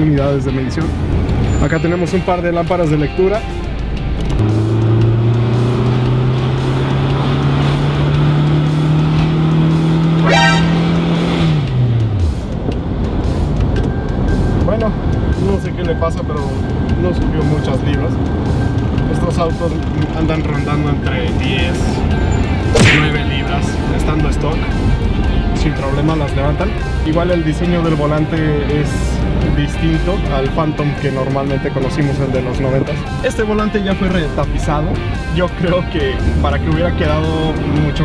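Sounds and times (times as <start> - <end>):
car engine accelerating: 3.9 - 15.3
brief sharp sound: 10.2 - 11.3, 22.7 - 23.5.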